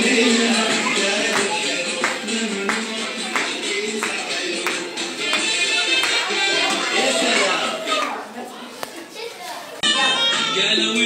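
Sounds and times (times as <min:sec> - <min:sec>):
loud dance music: 0:00.0 - 0:08.2, 0:09.8 - 0:11.0
children chattering: 0:00.0 - 0:11.0.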